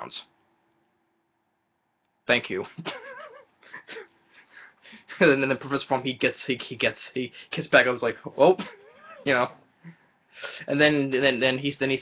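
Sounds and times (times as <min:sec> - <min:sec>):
man giggling: 0:02.7 - 0:05.4, 0:08.5 - 0:09.4.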